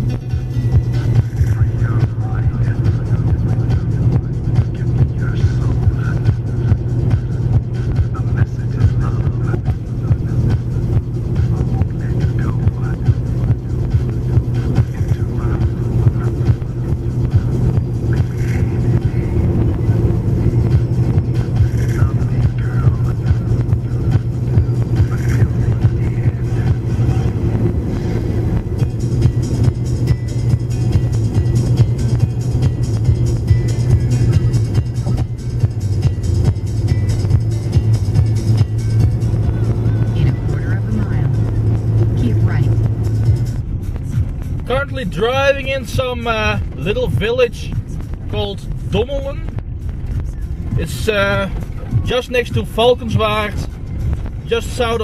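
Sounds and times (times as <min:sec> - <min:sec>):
background music: 0:00.0 - 0:55.0
car engine and road drone: 0:00.0 - 0:55.0.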